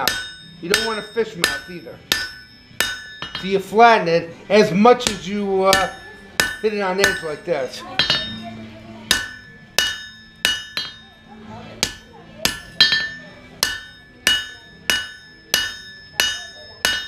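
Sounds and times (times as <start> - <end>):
hammer striking steel on anvil: 0.0 - 3.8, 5.0 - 8.5, 9.1 - 17.0.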